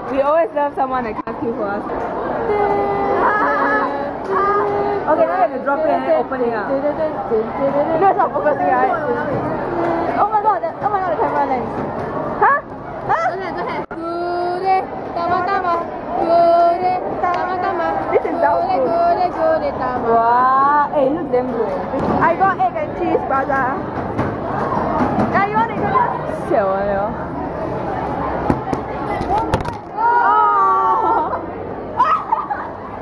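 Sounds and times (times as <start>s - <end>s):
canteen chatter: 0.0s - 33.0s
woman singing long held notes: 2.5s - 5.4s.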